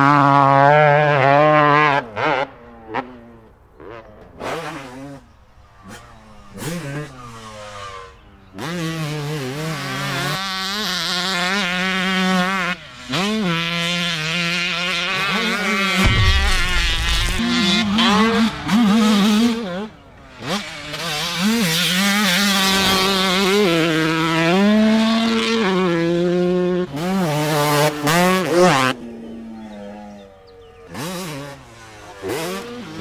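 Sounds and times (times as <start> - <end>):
dirt bike engine revving: 3.8 - 28.9, 30.9 - 33.0
low rumble: 16.0 - 18.9.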